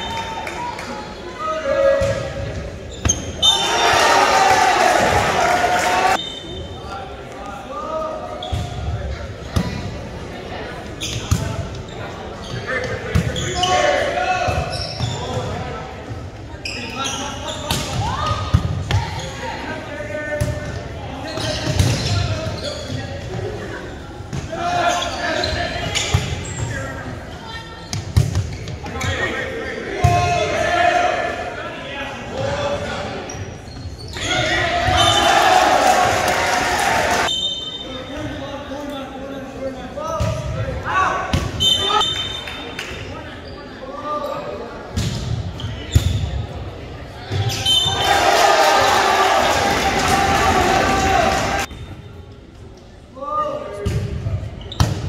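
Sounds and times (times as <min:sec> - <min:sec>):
people shouting in a gym: 0:00.0 - 0:06.2, 0:16.8 - 0:20.4, 0:34.0 - 0:38.0, 0:40.6 - 0:42.5, 0:47.2 - 0:51.7.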